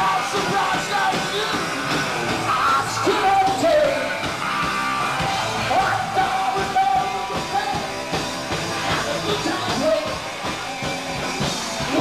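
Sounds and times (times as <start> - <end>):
singer's voice: 0.0 - 4.4, 5.0 - 10.7, 11.6 - 12.0
bass guitar: 0.0 - 12.0
drums: 0.0 - 12.0
electric guitars: 0.0 - 12.0.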